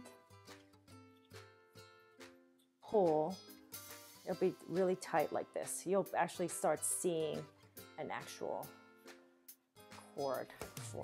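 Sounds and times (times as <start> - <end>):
plucked string music: 0.0 - 9.2.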